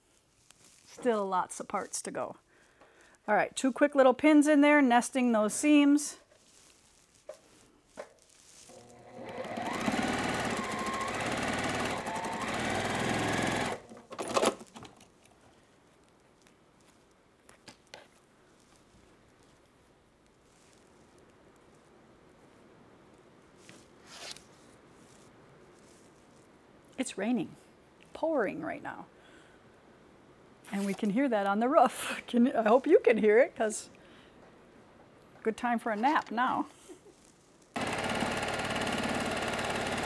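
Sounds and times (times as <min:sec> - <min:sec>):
sewing machine stitching: 0:08.7 - 0:14.8, 0:37.8 - 0:40.0.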